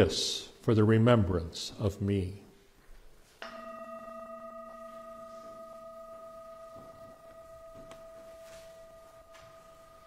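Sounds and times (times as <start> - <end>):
singing bowl ringing: 3.4 - 10.0.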